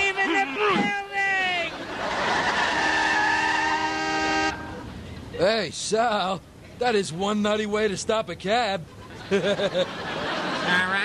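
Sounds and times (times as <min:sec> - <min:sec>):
car tyres screeching: 0:02.0 - 0:05.0.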